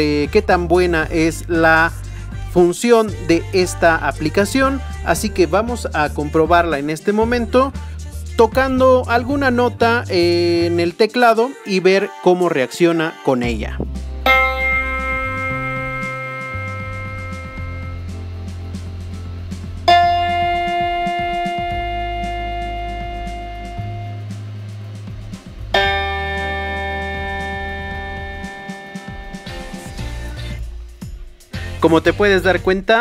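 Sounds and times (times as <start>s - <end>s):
electronic keyboard notes: 14.1s - 30.6s.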